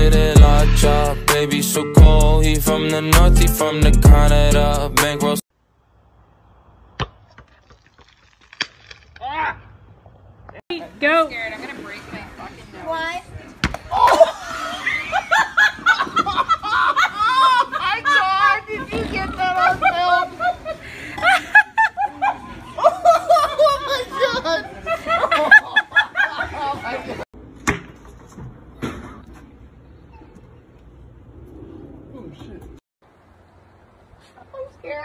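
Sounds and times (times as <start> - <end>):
basketball thumping on concrete: 13.6 - 13.9, 27.6 - 29.0
woman laughing: 13.9 - 27.2.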